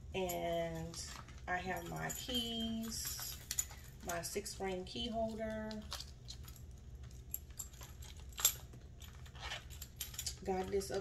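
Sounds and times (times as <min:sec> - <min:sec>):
metal keys jingling: 0:00.0 - 0:11.0.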